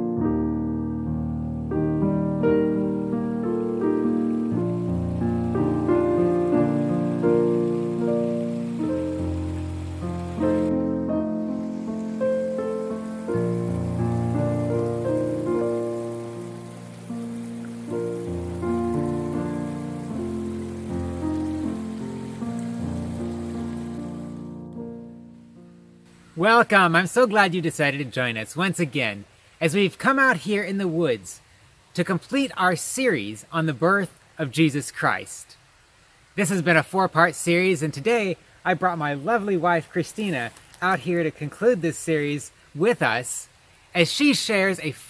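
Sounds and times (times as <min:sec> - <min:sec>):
solo piano music: 0:00.0 - 0:26.1.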